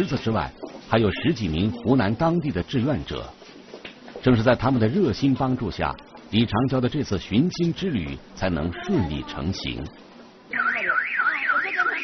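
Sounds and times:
electronic alarm warbling: 10.5 - 12.0.

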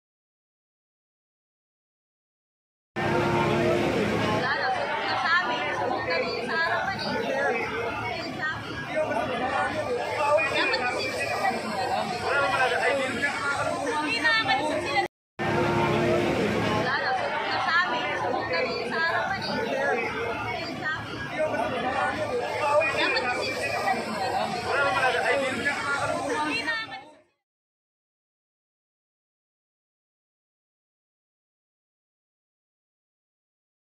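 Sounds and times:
crowd talking and calling out: 3.0 - 27.2.

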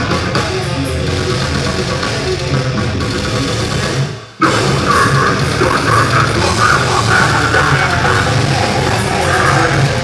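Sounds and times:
metal band playing live: 0.0 - 10.0.

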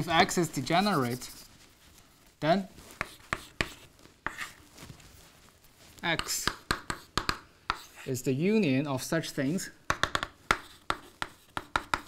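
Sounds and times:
chalk tapping and scratching: 0.0 - 1.6, 2.8 - 4.8, 6.0 - 8.1, 9.9 - 12.0.

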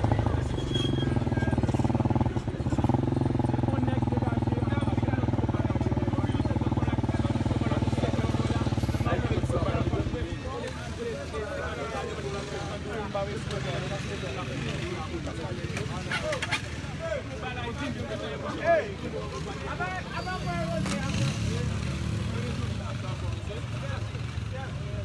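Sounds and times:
people chattering: 0.0 - 25.0
motorcycle engine idling: 1.1 - 10.4.

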